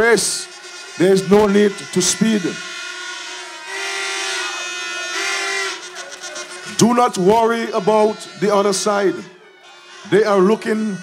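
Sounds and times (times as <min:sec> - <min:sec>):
long horn blasts: 0:00.0 - 0:11.0.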